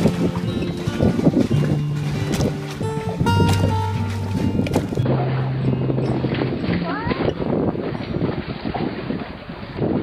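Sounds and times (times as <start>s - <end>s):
sea wash: 0.0s - 10.0s
wind buffeting microphone: 0.0s - 10.0s.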